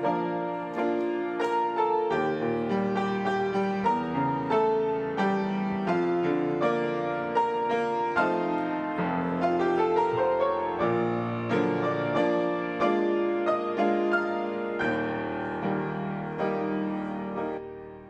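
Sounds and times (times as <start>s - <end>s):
slow gentle piano piece: 0.0s - 18.0s.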